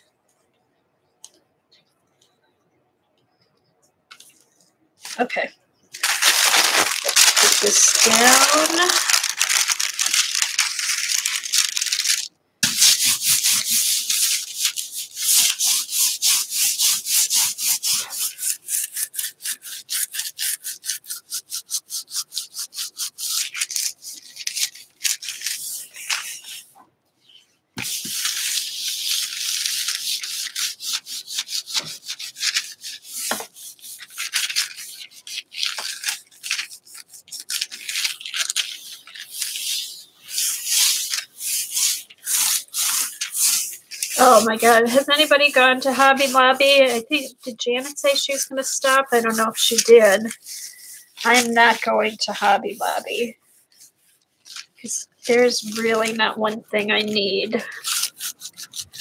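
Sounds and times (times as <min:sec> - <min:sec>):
hands rubbing paper: 0:04.2 - 0:59.0.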